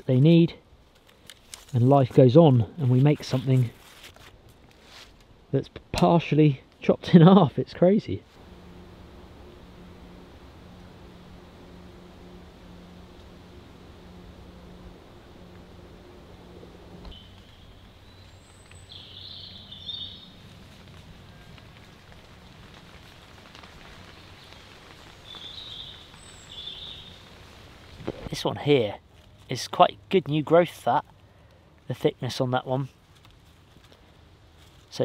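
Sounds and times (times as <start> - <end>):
low steady hum: 0.0 - 34.9
faint steady hiss: 0.0 - 35.0.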